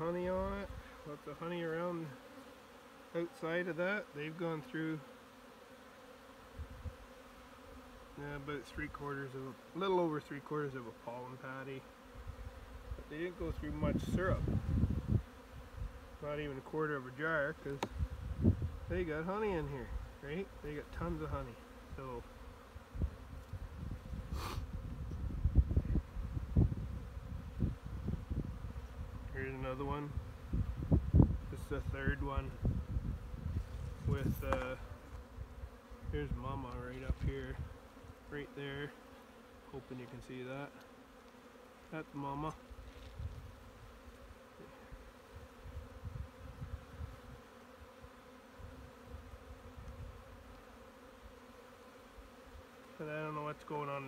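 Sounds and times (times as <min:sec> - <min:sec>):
honeybees buzzing: 0:00.0 - 0:54.0
hive tool scrape: 0:33.4 - 0:48.3.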